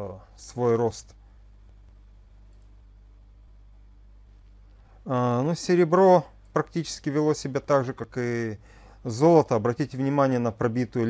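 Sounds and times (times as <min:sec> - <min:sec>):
faint microphone hiss: 0:00.0 - 0:11.0
low electrical hum: 0:00.0 - 0:11.0.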